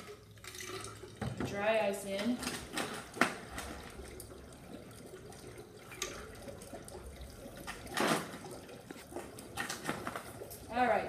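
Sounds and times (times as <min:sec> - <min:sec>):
dry ice bubbling in water: 0:00.0 - 0:11.0.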